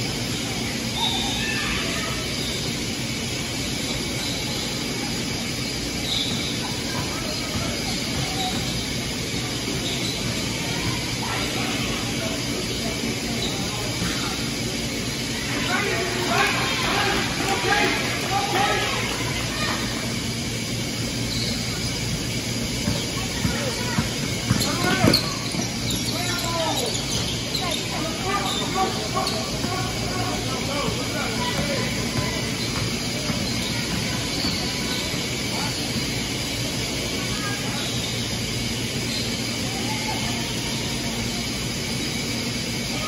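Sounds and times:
steady background hum: 0:00.0 - 0:43.0
voices calling out in a gym: 0:00.0 - 0:43.0
sneaker squeaks on hardwood: 0:22.8 - 0:29.8, 0:31.5 - 0:35.2.

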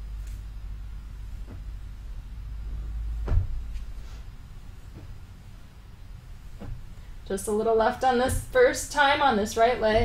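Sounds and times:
low hum: 0:00.0 - 0:10.0
heel thump on mattress: 0:01.4 - 0:02.0, 0:03.0 - 0:04.2, 0:06.5 - 0:07.0.

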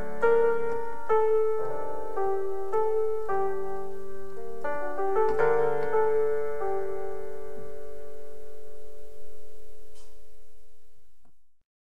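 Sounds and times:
piano chord ringing: 0:00.0 - 0:10.3.

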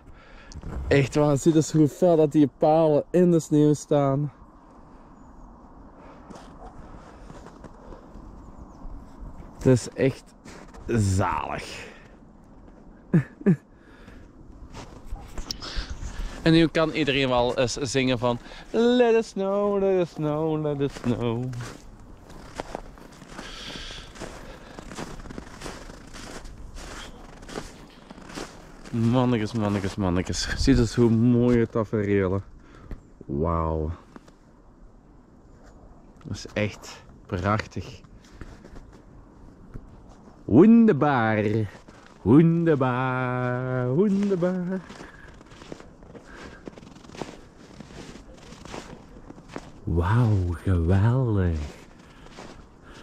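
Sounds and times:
footsteps in snow: 0:06.0 - 0:13.0, 0:14.0 - 0:31.3, 0:37.8 - 0:53.0.

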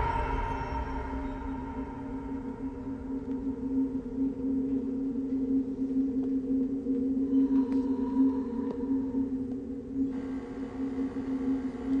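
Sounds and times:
low drone film score: 0:00.0 - 0:12.0.

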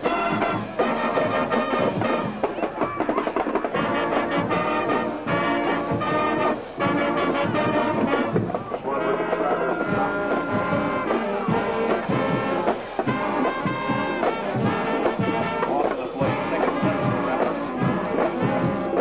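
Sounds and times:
marching band playing brass chords: 0:00.0 - 0:19.0.

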